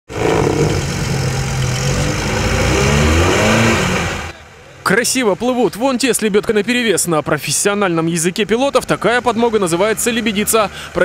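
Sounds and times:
car engine revving under load: 0.1 - 4.4.

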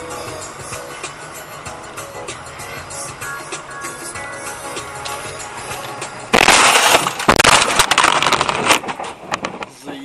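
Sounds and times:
car crash impact: 6.3 - 9.7
crunching and sharp knocks: 6.3 - 9.7.

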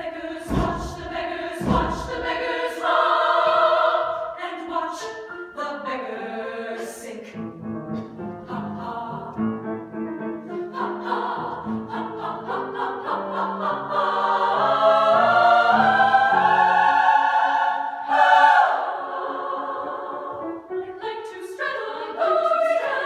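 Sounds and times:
women's choir singing: 0.0 - 7.4, 8.1 - 23.0.

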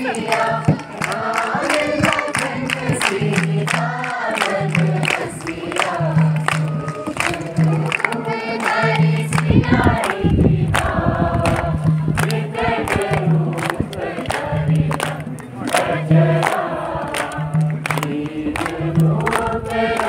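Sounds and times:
group singing over loudspeakers: 0.0 - 20.0.

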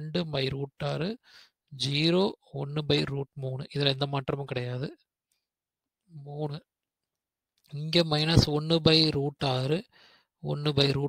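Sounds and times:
man speaking: 0.0 - 1.2, 1.8 - 5.1, 6.1 - 6.7, 7.7 - 11.0.

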